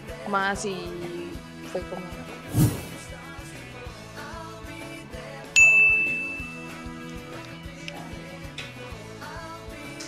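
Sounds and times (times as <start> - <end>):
light background music: 0.0 - 10.0
bright ding: 5.6 - 6.7.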